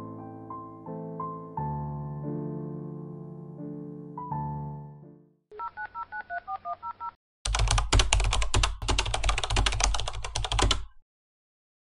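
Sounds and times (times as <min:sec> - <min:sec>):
computer keyboard typing: 0:07.5 - 0:11.0.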